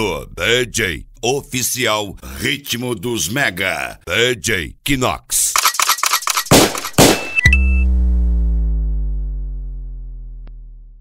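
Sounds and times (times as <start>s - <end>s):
short effect hits: 6.5s - 10.9s
heavy hit with deep bass note: 7.0s - 10.9s.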